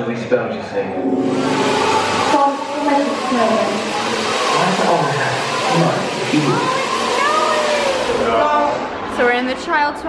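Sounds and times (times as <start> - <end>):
loud hissing rush effect: 1.2 - 8.5
voices: 2.3 - 10.0.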